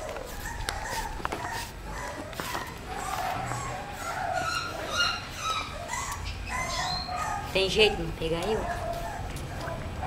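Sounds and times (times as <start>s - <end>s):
puppy whimpering: 0.0s - 9.9s.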